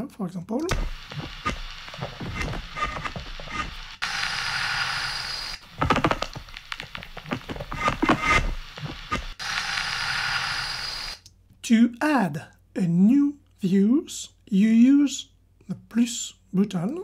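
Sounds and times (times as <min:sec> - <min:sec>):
crackling clicks and knocks: 0:00.6 - 0:09.9
hissing noise texture: 0:00.7 - 0:11.3.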